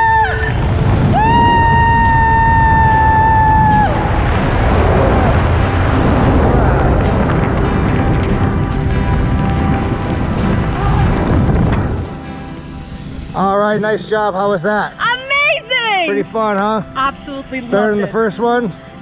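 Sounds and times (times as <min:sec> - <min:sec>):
woman's high held whoo: 0:00.0 - 0:04.1
wind rush on microphone: 0:00.0 - 0:13.4.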